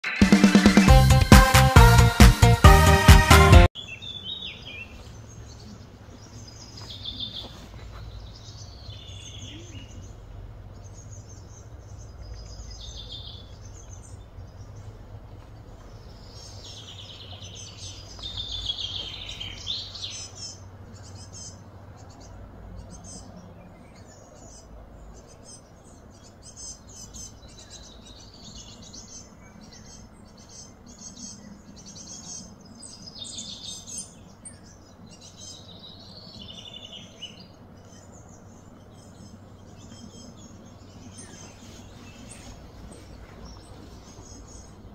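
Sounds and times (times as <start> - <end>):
small birds chirping and singing: 0.0 - 44.9
low hum: 9.4 - 26.4.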